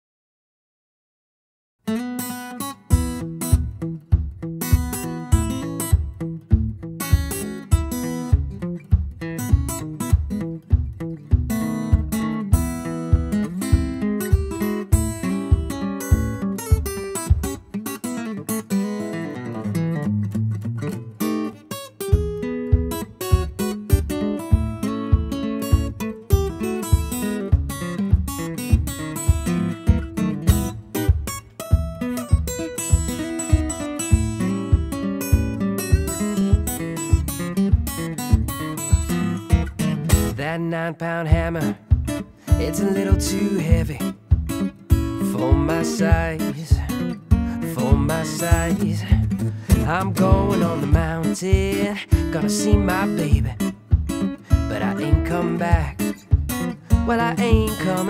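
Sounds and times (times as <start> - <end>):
fingerstyle acoustic guitar: 1.8 - 58.0.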